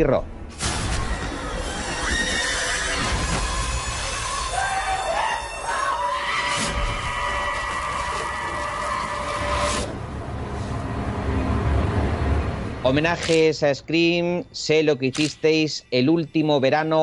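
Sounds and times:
steady low rumble and hiss: 0.0 - 1.4, 9.9 - 17.0.

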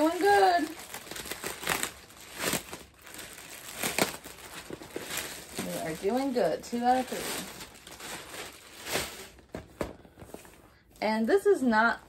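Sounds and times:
plastic bag rustling: 0.0 - 11.4.

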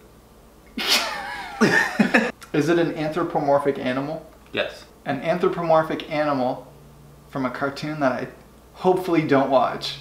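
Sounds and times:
man laughing: 0.8 - 2.3.

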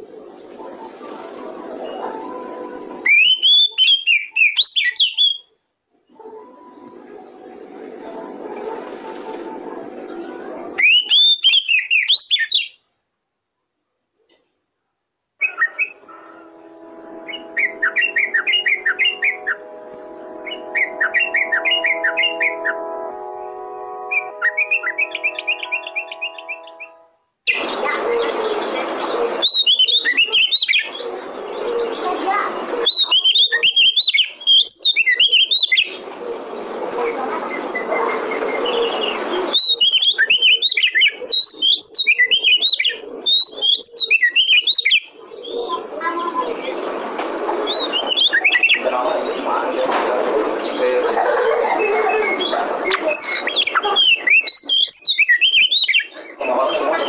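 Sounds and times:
bird chirping song: 3.0 - 7.4, 10.1 - 12.8, 15.4 - 36.8, 37.5 - 49.9, 51.8 - 57.0
loud hissy background: 15.8 - 41.4, 45.0 - 55.2
low droning tones: 15.9 - 27.2.

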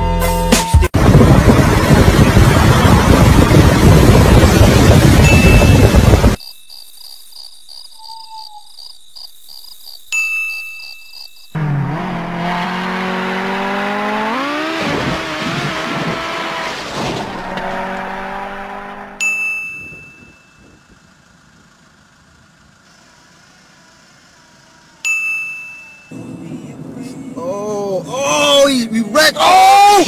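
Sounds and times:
car engine revving: 1.0 - 6.4, 11.5 - 19.2
bright ding: 5.2 - 6.2, 10.1 - 11.1, 19.2 - 20.8, 25.0 - 26.2.

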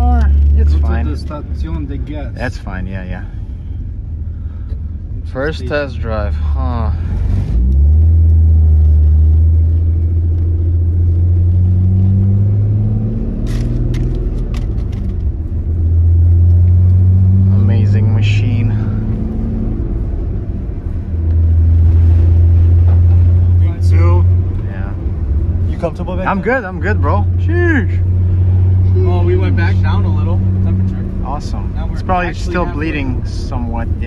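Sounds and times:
car engine accelerating: 0.0 - 34.0.

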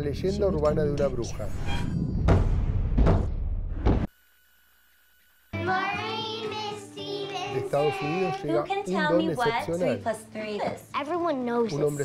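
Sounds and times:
music: 5.6 - 12.0.

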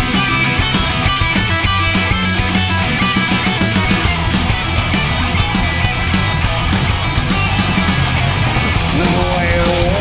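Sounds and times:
bass guitar: 0.0 - 10.0
distorted electric guitar riffing: 0.0 - 10.0
drums: 0.0 - 10.0.

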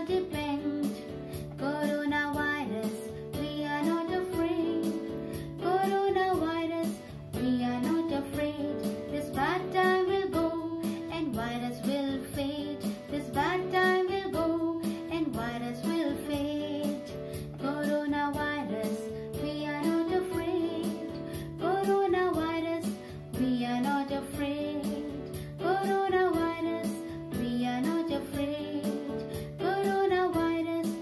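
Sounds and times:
electronic keyboard music: 0.0 - 31.0.

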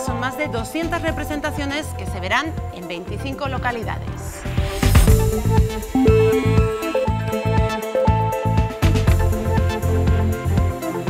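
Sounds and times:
instrumental theme music: 0.0 - 11.0.

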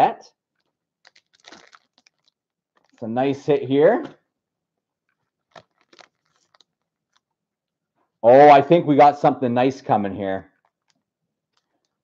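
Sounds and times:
foil wrapper crinkling: 0.6 - 3.1, 5.0 - 7.4.

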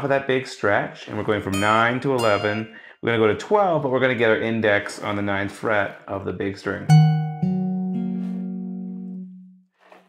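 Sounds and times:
acoustic guitar plucked notes: 1.5 - 2.7, 6.9 - 9.6.

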